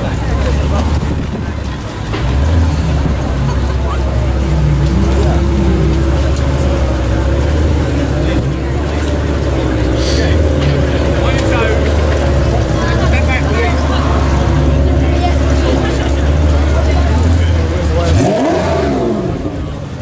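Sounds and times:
car engine idling and revving: 0:00.0 - 0:20.0
crowd chatter: 0:00.0 - 0:20.0.

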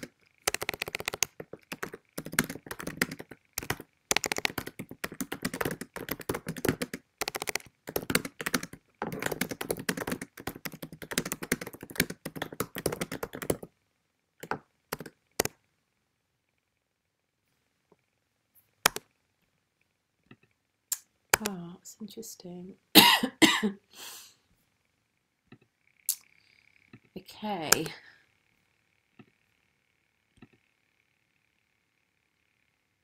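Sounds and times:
laptop keyboard typing: 0:00.0 - 0:13.7, 0:14.4 - 0:15.6, 0:18.8 - 0:19.0.

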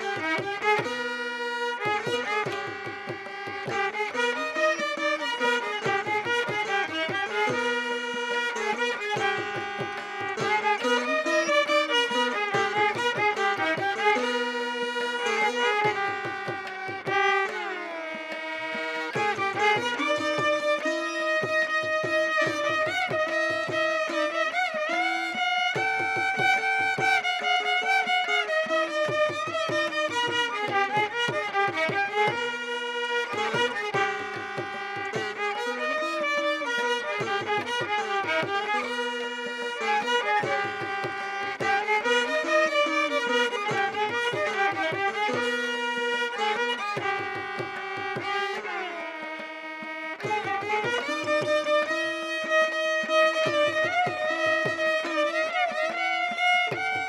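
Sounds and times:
veena melody: 0:00.0 - 0:57.0
violin melody: 0:00.0 - 0:57.0.

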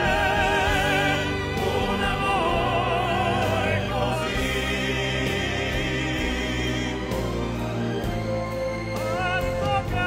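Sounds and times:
men singing operatically: 0:00.0 - 0:07.8, 0:09.0 - 0:10.0
instrumental backing music: 0:00.0 - 0:10.0.

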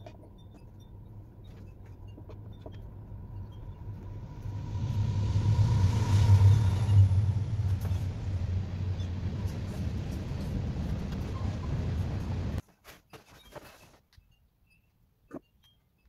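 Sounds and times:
low rumbling hum: 0:00.0 - 0:12.6.

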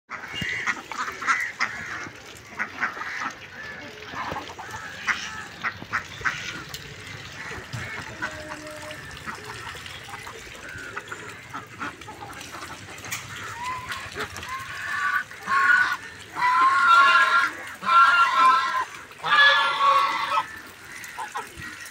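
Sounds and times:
ducks quacking: 0:00.1 - 0:21.9.

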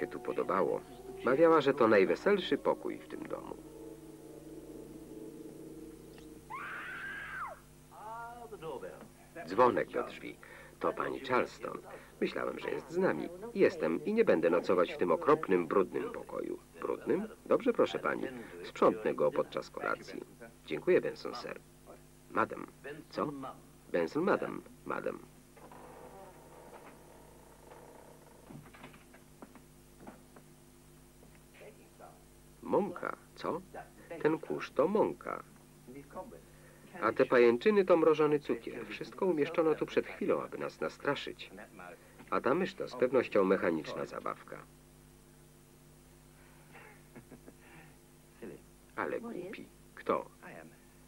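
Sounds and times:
low steady hum: 0:00.0 - 0:51.0.

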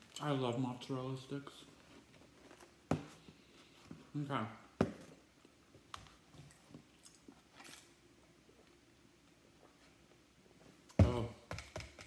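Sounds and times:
soft rustle: 0:01.4 - 0:04.2.

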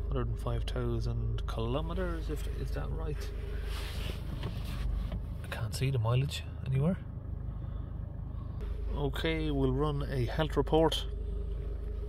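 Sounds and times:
diesel engine idling: 0:00.0 - 0:12.0
light rustle: 0:03.2 - 0:05.6.

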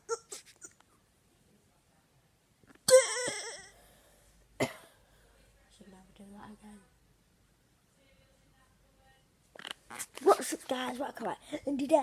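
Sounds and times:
boy's cough-like vocal noise: 0:02.8 - 0:03.8, 0:04.6 - 0:05.0.

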